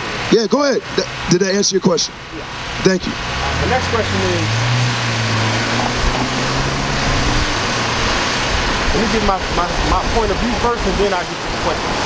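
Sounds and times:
traffic noise: 0.0s - 12.0s
vehicle engine droning: 0.0s - 12.0s.

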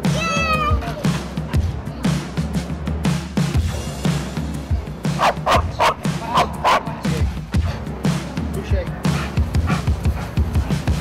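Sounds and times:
background music with steady beat: 0.0s - 11.0s
dog barking: 5.2s - 7.0s.

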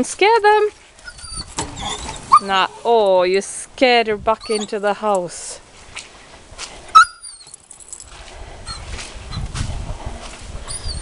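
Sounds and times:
dog whining: 1.0s - 2.5s, 4.4s - 4.8s, 7.0s - 7.6s, 10.7s - 11.0s.

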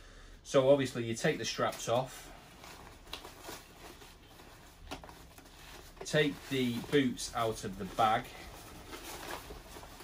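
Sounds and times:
nylon bag rustling: 1.3s - 10.0s.

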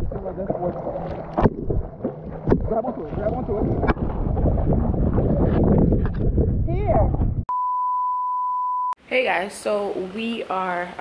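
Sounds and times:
water splashing and sloshing: 0.0s - 6.7s
wind buffeting microphone: 1.4s - 7.5s.

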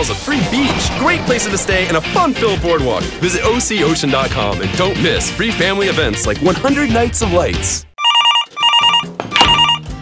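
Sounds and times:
electronic telephone ringing: 8.0s - 9.8s.

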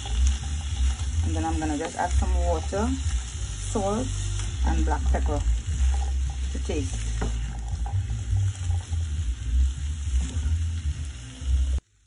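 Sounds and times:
spatula stirring: 0.0s - 11.8s
food sizzling in a frying pan: 0.0s - 12.0s.

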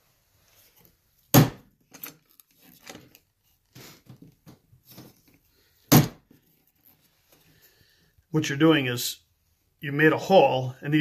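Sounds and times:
chisel struck into hardwood: 1.3s - 1.6s.

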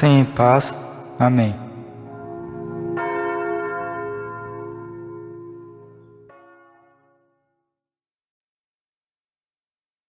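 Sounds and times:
bell ringing: 0.9s - 7.5s.

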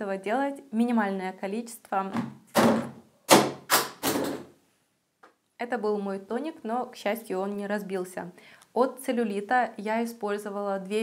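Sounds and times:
plastic bottle falling and clattering: 2.1s - 4.5s.

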